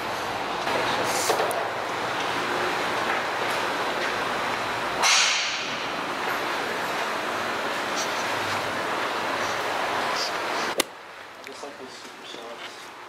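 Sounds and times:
large store background noise: 0.0s - 13.0s.

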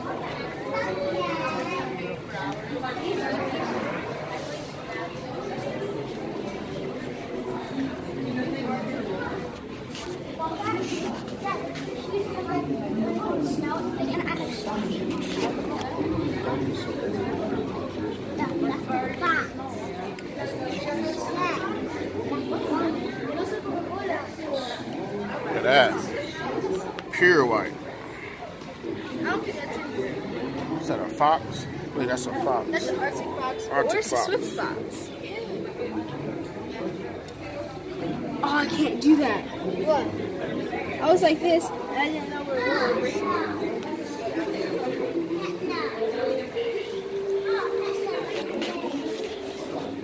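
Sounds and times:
people chattering indistinctly: 0.0s - 50.0s.

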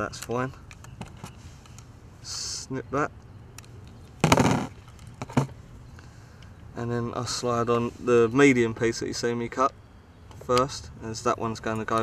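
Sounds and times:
rustling clatter on plastic lid: 4.2s - 5.6s.

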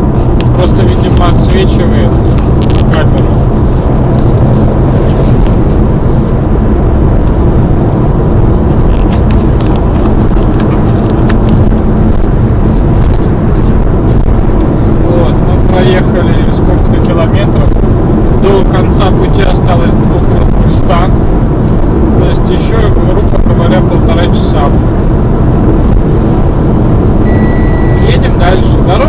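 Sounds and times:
car cabin road and engine noise: 0.0s - 29.0s.

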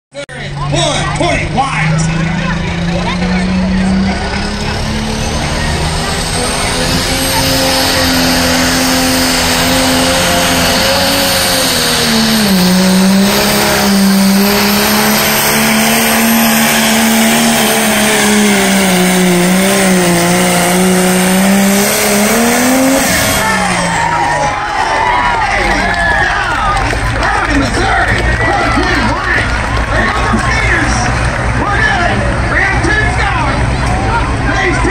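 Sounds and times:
diesel engine at full throttle: 0.1s - 34.9s
high whine: 1.2s - 24.8s.

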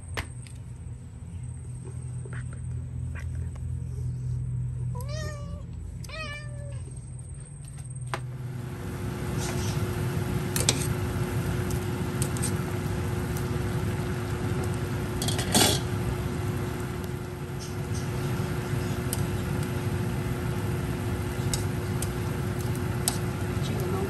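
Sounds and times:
steady low hum: 0.0s - 24.0s
soup simmering in a pot: 8.5s - 23.6s.

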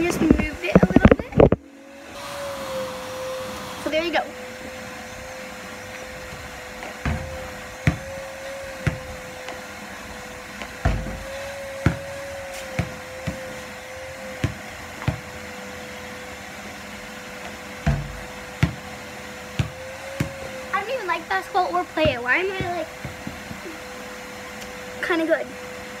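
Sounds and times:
vacuum cleaner running: 0.0s - 26.0s
basketball bouncing on pavement: 6.3s - 9.9s, 10.5s - 15.4s, 17.4s - 21.2s, 21.8s - 23.7s
basketball hitting hoop: 6.8s - 9.3s, 10.6s - 13.6s, 14.3s - 15.3s, 17.8s - 18.9s, 19.6s - 20.5s, 22.0s - 23.6s.

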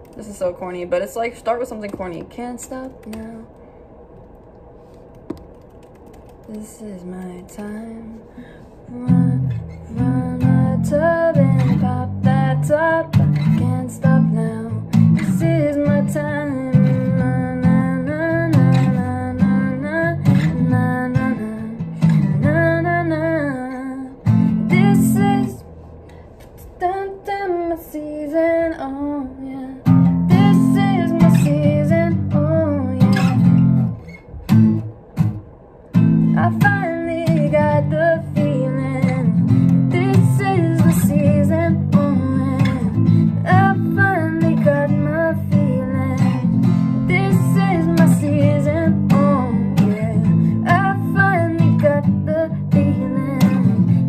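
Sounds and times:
woman singing: 1.2s - 3.6s, 6.5s - 25.7s, 26.6s - 33.8s, 36.2s - 54.0s
acoustic guitar strumming: 8.9s - 27.0s, 29.5s - 54.0s.

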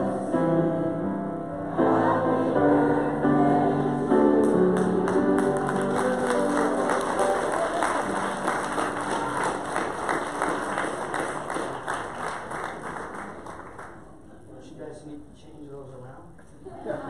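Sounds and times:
congregation singing: 0.0s - 11.4s
congregation applauding: 4.7s - 14.1s.

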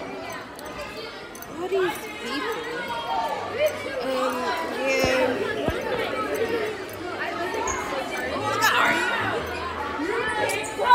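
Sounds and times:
chatter of many people: 0.0s - 10.9s.

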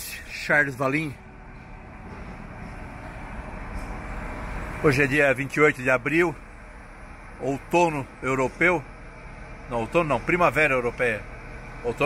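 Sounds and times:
car driving along street: 0.0s - 12.0s.

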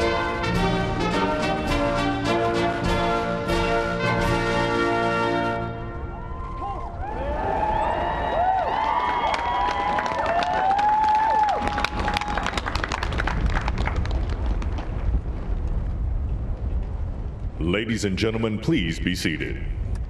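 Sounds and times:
crowd cheering: 6.0s - 14.1s
crowd clapping: 7.8s - 15.2s.

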